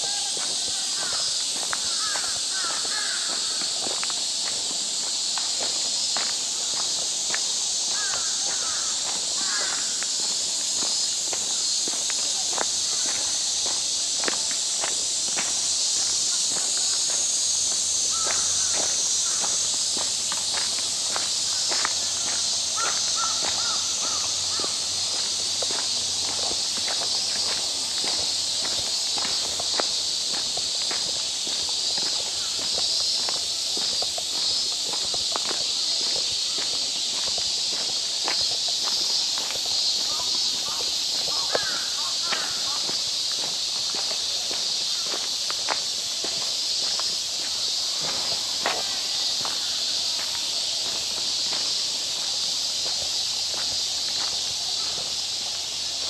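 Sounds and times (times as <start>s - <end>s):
footsteps on gravel: 0.0s - 56.0s
insects droning: 0.0s - 56.0s.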